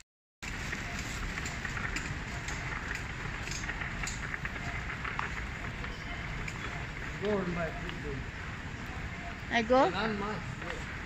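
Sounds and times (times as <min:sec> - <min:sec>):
low murmur: 0:00.5 - 0:11.0.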